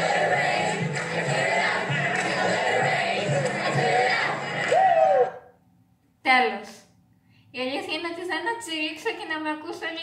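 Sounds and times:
pop music: 0.0 - 5.3
crowd shouting: 1.3 - 5.4.

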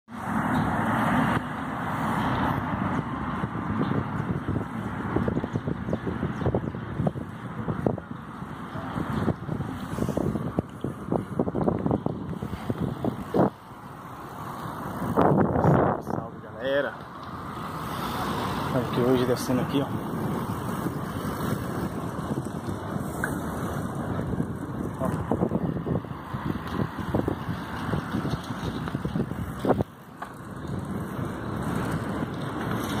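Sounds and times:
wind buffeting microphone: 0.4 - 33.0
bicycle knocks and rattles: 26.5 - 33.0.

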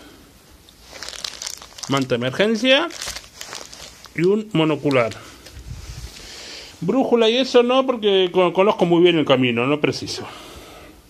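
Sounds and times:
plastic packaging crinkling: 0.7 - 5.6.

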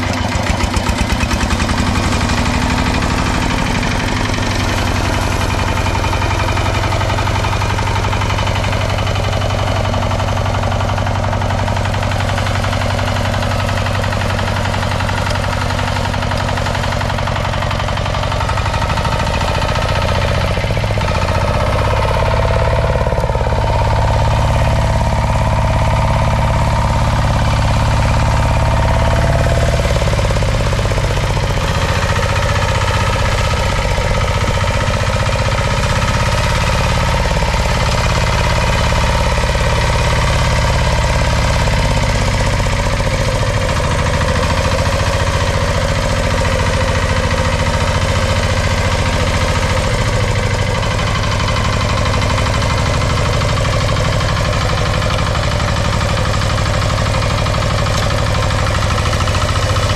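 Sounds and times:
diesel tiller engine running: 0.0 - 59.9.

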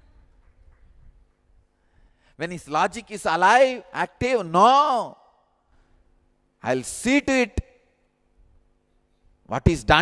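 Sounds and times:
faint steady hum: 0.0 - 10.0
man speaking: 2.4 - 5.2, 9.5 - 10.0.

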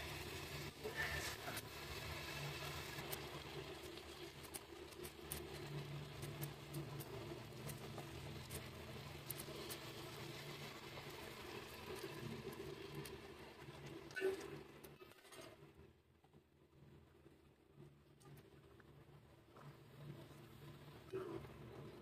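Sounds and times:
meat sizzling in oil: 0.0 - 13.6.

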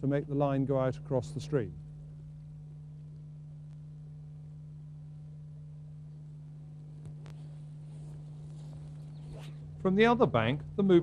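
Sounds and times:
low videotape hum: 0.0 - 11.0.

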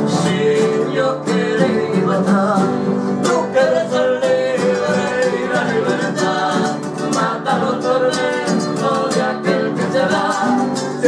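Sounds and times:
acoustic guitars strumming: 0.0 - 11.0
men singing: 0.0 - 11.0.

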